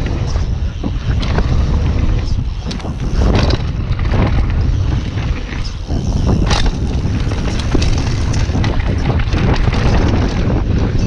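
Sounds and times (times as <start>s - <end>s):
bike clicking and rattling: 0.0s - 11.0s
bike tyres rumbling on dirt: 0.0s - 11.0s
wind buffeting microphone: 0.0s - 11.0s.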